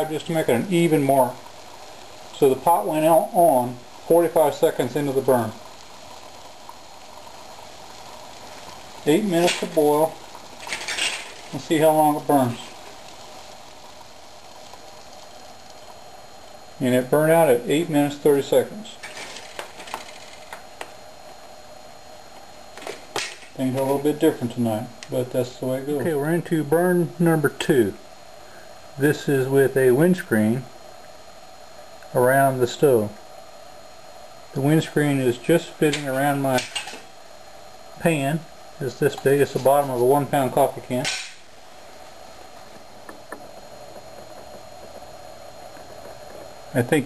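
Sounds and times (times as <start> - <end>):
alcohol stove burning: 0.0 - 47.0
steady low hiss: 0.0 - 47.0.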